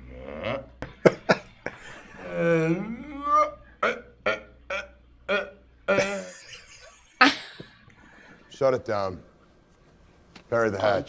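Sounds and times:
man's wavering vocal sound: 0:00.0 - 0:00.8, 0:02.0 - 0:06.3.

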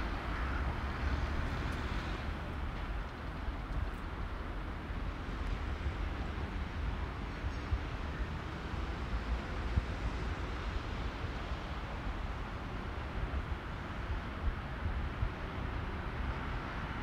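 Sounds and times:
hum of traffic: 0:00.0 - 0:17.0.

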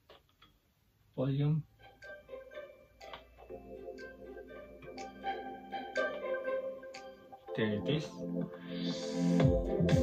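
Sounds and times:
playful instrumental music from speaker: 0:01.3 - 0:10.0.

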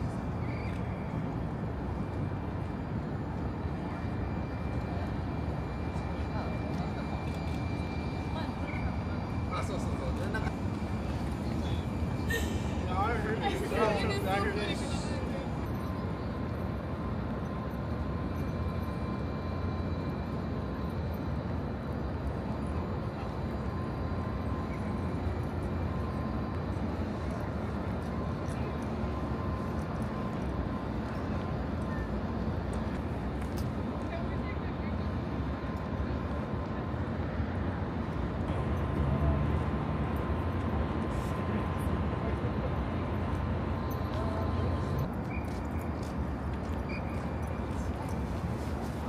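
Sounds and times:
murmur of distant voices: 0:00.0 - 0:49.0
outdoor background rumble: 0:00.0 - 0:49.0.

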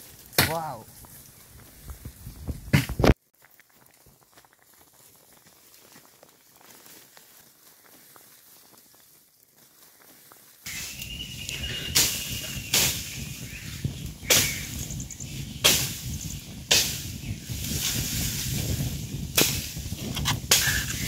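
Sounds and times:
fire burning with low rush: 0:00.0 - 0:08.8, 0:10.7 - 0:21.0
fire popping: 0:00.0 - 0:21.0.

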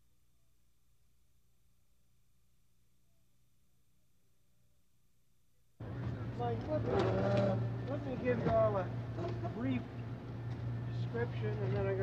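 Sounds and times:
men talking indistinctly: 0:05.8 - 0:10.0, 0:10.8 - 0:12.0.

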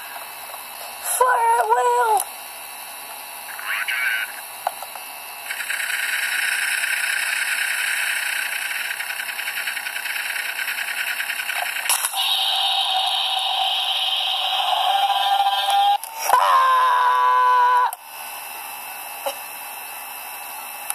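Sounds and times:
steady hum: 0:00.0 - 0:20.9
rattling gunfire hiss: 0:05.4 - 0:12.2.

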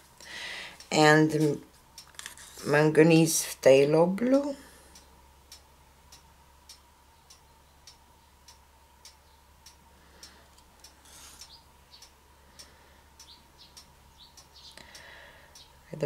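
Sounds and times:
faint regular ticking: 0:00.0 - 0:16.0.

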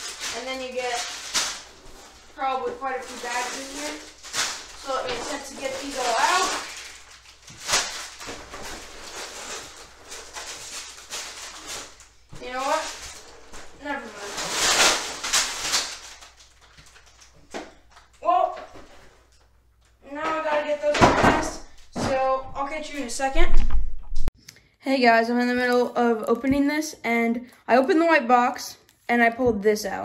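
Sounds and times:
person speaking: 0:00.0 - 0:01.2, 0:02.4 - 0:04.2, 0:04.8 - 0:06.8, 0:12.4 - 0:13.0, 0:13.8 - 0:14.5, 0:18.2 - 0:18.8, 0:20.0 - 0:23.8
plastic bags rustling: 0:00.0 - 0:23.9.

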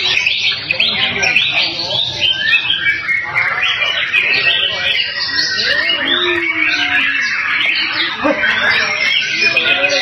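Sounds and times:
songbirds chirping chorus: 0:00.0 - 0:10.0.

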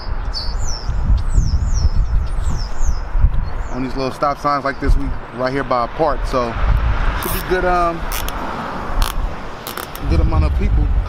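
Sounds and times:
zip tie zipping through ratchet: 0:07.2 - 0:08.4, 0:09.0 - 0:10.1.

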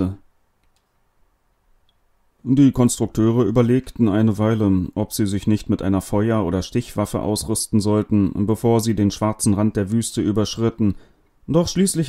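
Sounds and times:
person's voice: 0:00.0 - 0:00.3, 0:02.4 - 0:12.0
faint tiny clicks: 0:00.6 - 0:02.0.

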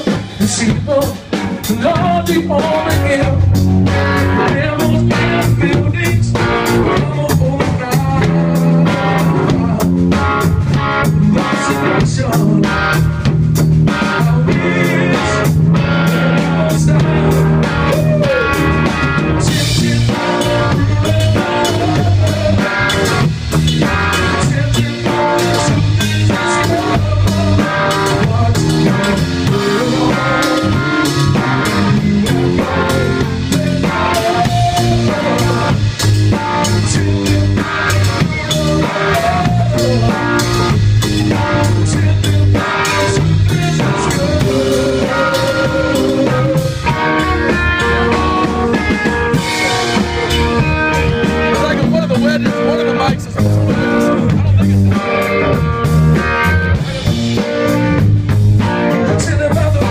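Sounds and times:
drum kit: 0:00.0 - 0:59.9
electric guitar: 0:00.0 - 0:59.9.

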